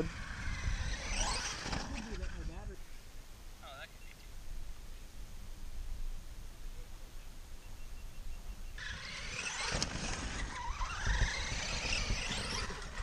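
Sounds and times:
electric motor whining: 0.0s - 2.5s, 8.8s - 13.0s
low wind rumble on microphone: 0.0s - 2.9s, 9.9s - 13.0s.

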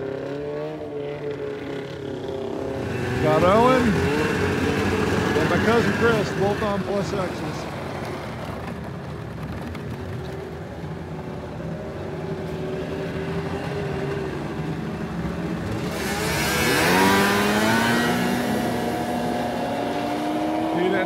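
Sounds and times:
snowmobile engines accelerating: 0.0s - 21.0s.

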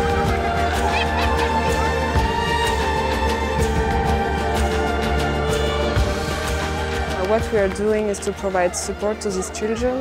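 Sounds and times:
background music with steady beat: 0.0s - 10.0s.

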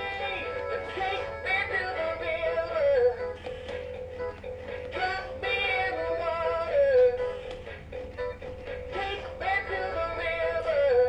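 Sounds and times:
instrumental backing music: 0.0s - 11.0s.

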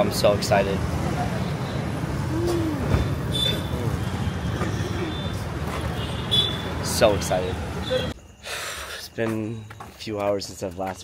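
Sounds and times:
road traffic rumble: 0.0s - 9.2s.

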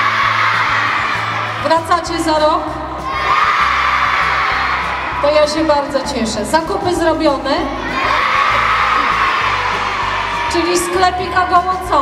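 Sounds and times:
children cheering and shouting: 0.0s - 1.8s, 3.0s - 5.6s, 7.6s - 11.8s
background music with steady beat: 0.0s - 12.0s.

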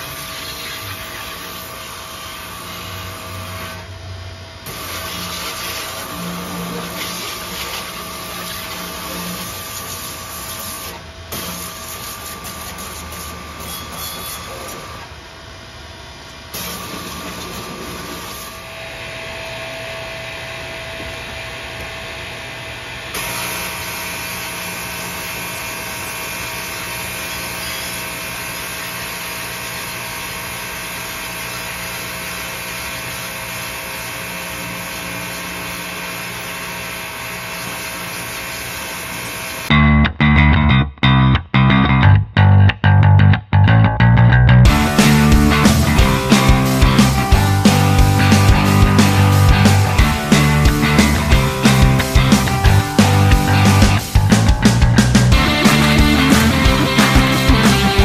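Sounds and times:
pressure washer spray hissing: 4.8s - 6.0s, 6.7s - 10.8s, 11.4s - 13.4s, 44.8s - 54.3s.

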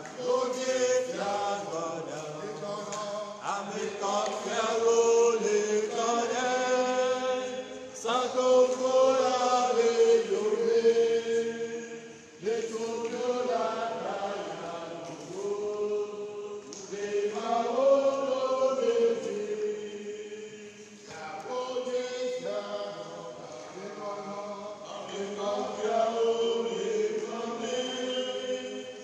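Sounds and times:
choir singing a hymn: 0.0s - 29.0s.

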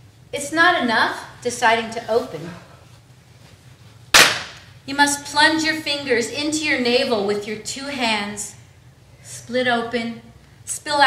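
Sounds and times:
hand clap smack: 4.1s - 4.7s.

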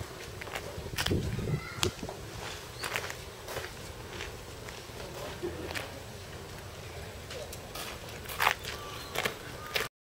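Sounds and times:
footsteps walking: 0.0s - 9.9s.

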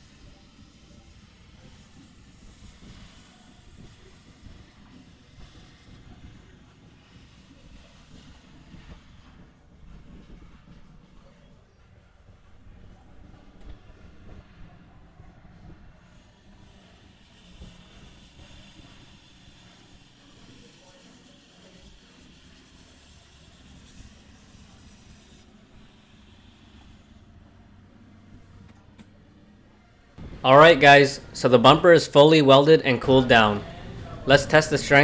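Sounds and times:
hot air hiss: 0.0s - 9.3s, 16.1s - 27.4s
hot air welder hum: 0.0s - 10.7s, 12.2s - 29.6s, 30.2s - 35.0s.

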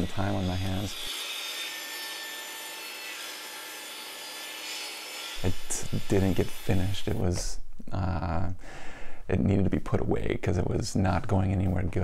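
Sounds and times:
table saw cutting wood: 0.0s - 7.3s.

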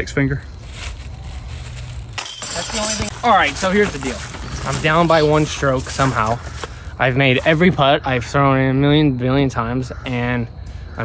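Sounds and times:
chains jingling and rattling: 1.5s - 4.9s
disc striking metal chains: 2.1s - 3.8s.

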